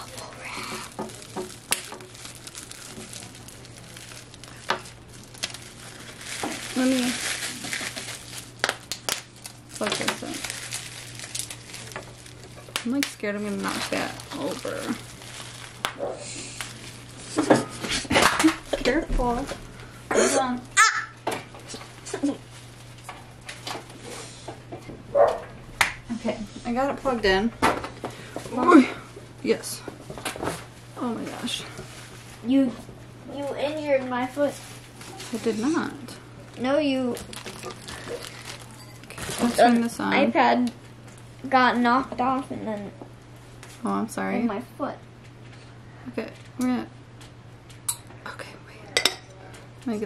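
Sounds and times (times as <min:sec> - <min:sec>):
plastic packaging crinkling: 0:00.0 - 0:19.8, 0:34.5 - 0:40.2.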